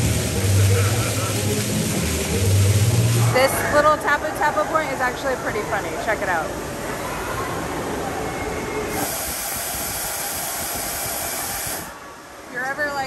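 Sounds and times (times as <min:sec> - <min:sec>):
air blower hissing: 0:08.9 - 0:12.0.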